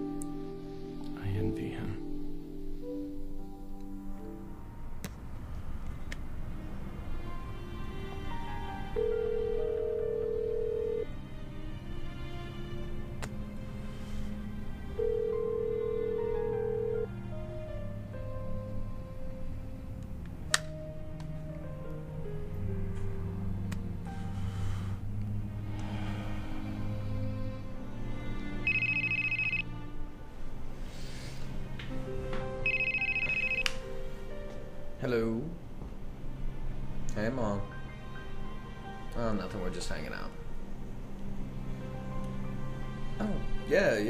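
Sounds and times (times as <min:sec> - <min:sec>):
soft music score of held notes: 0:00.0 - 0:44.0
telephone ringback tone: 0:09.0 - 0:11.1, 0:15.0 - 0:17.1, 0:28.7 - 0:29.7, 0:32.6 - 0:33.7.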